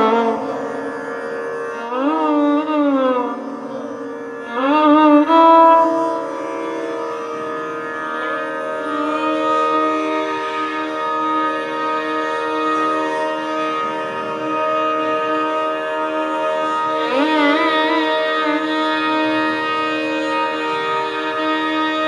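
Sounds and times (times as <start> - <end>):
violins playing sustained notes: 0.0 - 22.0
steady drone: 7.3 - 22.0.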